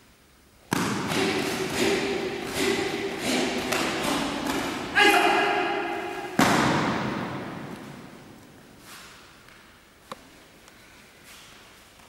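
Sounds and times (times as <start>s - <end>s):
loud voice: 1.1s - 6.2s.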